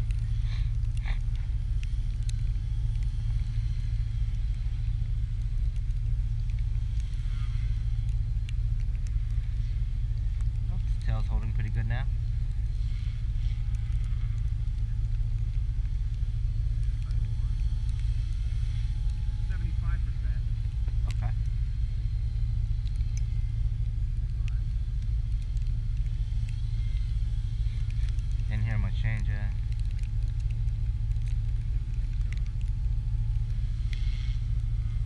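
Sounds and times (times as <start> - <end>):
distant rc helicopter whine: 0.0 - 35.0
low rumble: 0.0 - 35.0.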